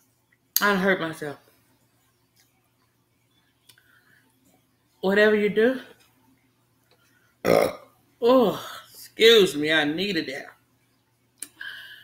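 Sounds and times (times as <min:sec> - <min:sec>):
woman burping: 0:07.4 - 0:07.9.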